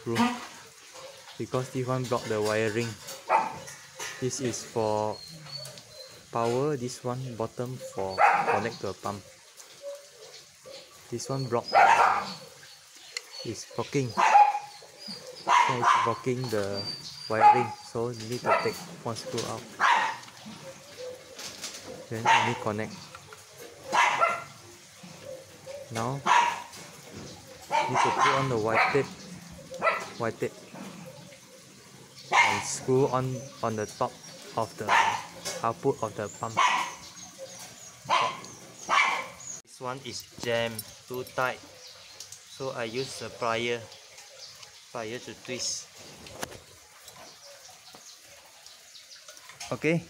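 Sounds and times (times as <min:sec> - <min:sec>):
dog barking sharply: 0:03.2 - 0:03.7, 0:08.2 - 0:08.7, 0:11.7 - 0:12.4, 0:14.2 - 0:14.7, 0:15.5 - 0:16.2, 0:19.8 - 0:20.2, 0:22.2 - 0:22.6, 0:23.9 - 0:24.5, 0:26.2 - 0:26.7, 0:27.7 - 0:29.0, 0:32.3 - 0:32.7, 0:34.9 - 0:35.3, 0:36.6 - 0:37.0, 0:38.1 - 0:39.4.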